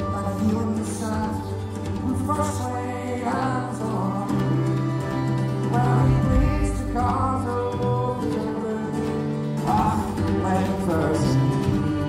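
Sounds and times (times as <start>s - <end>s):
fiddle: 0.0s - 12.0s
strummed acoustic guitar: 0.0s - 12.0s.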